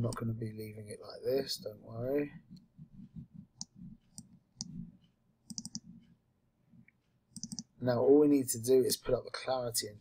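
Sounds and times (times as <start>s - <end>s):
computer mouse clicking: 3.6s - 6.2s, 6.8s - 7.8s.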